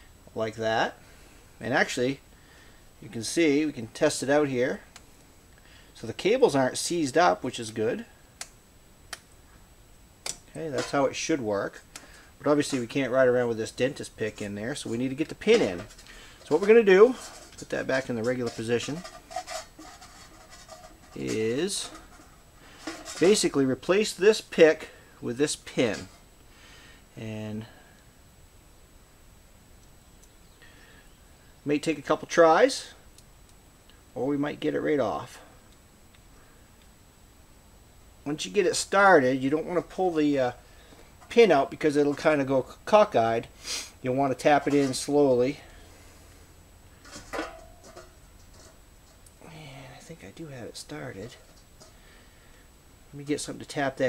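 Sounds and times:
faint rubbing: 0:14.8 - 0:23.6.

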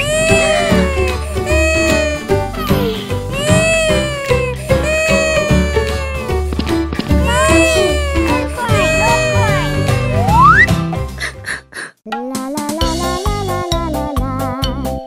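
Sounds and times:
cartoon baby wailing: 0:00.0 - 0:06.3, 0:07.2 - 0:10.6
background music: 0:00.0 - 0:15.0.

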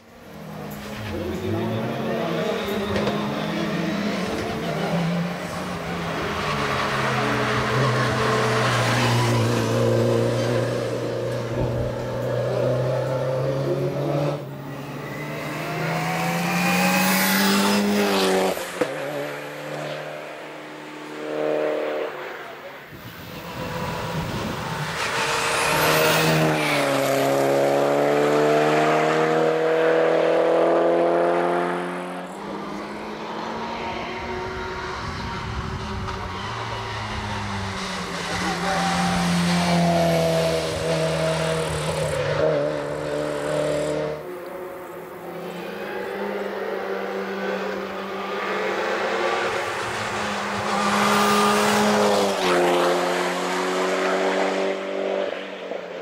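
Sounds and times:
car passing by loudly: 0:00.3 - 0:56.0.

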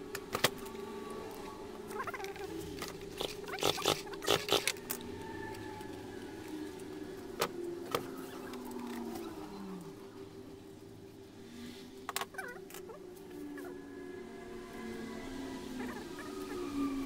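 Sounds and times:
steady background hum: 0:00.0 - 0:17.0.

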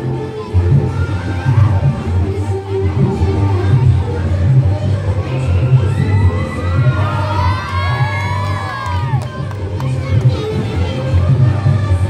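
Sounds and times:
children shouting and cheering: 0:00.0 - 0:12.0.

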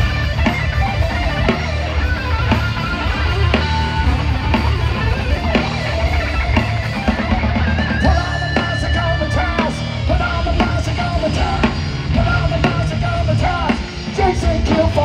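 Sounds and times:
live heavy metal band: 0:00.0 - 0:15.0.

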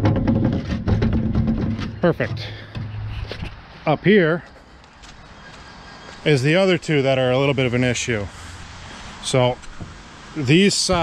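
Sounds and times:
wood knocking and scraping on metal: 0:00.0 - 0:03.6.

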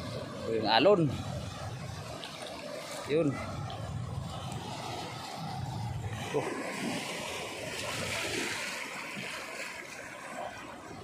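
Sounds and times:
water washing over rocks: 0:00.0 - 0:11.0.

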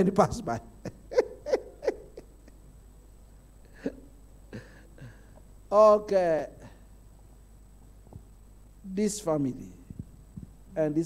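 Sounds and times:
man laughing into a microphone: 0:00.8 - 0:02.6.

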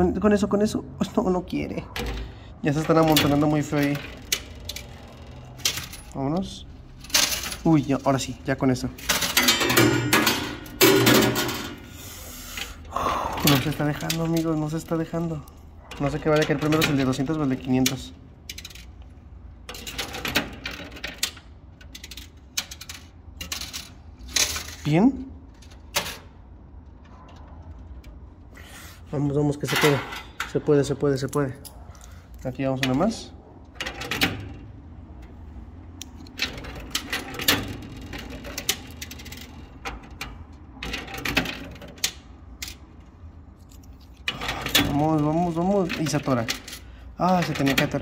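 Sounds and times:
coins clinking in arcade machine: 0:02.1 - 0:11.8.

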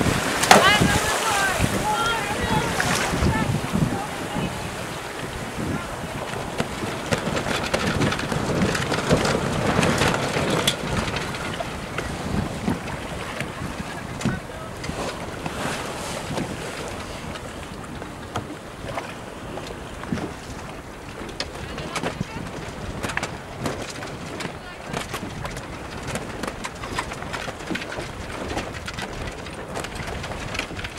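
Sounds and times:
choppy sea rushing: 0:00.0 - 0:30.9
wind buffeting microphone: 0:00.0 - 0:30.9.

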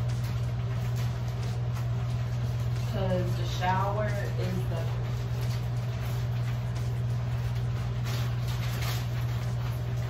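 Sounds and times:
exhaust fan humming: 0:00.0 - 0:10.0
plastic shower curtain rustling: 0:00.0 - 0:10.0.

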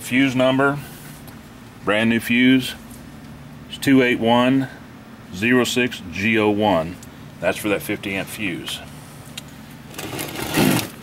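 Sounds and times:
steady low hum: 0:00.0 - 0:11.0
rustling scrape of parts moved: 0:09.9 - 0:11.0.

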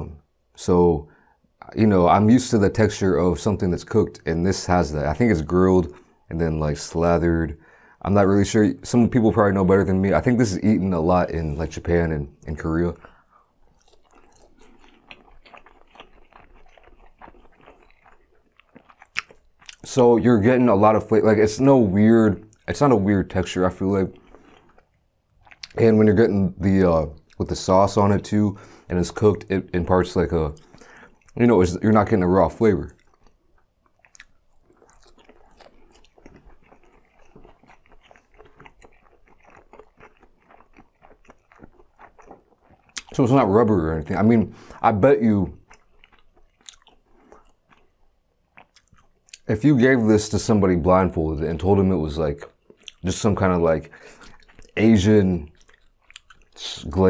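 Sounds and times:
wet chewing sounds: 0:11.4 - 0:50.5, 0:51.8 - 0:57.0.

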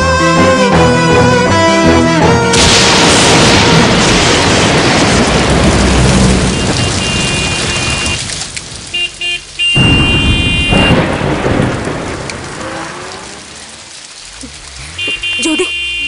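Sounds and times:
heavy rain: 0:00.0 - 0:16.0
thunderclap with rumble: 0:02.5 - 0:15.1.

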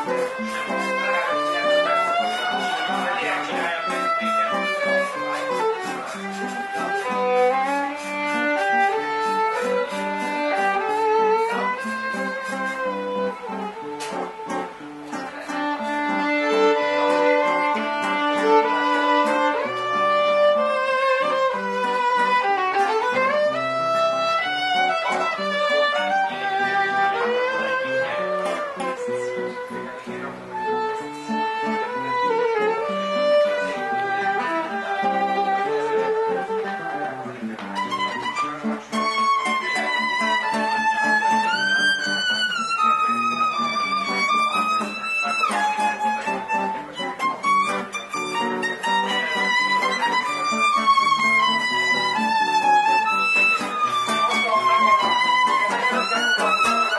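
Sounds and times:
steady low violin notes: 0:00.0 - 0:56.9
violin melody with vibrato: 0:00.0 - 0:56.9.

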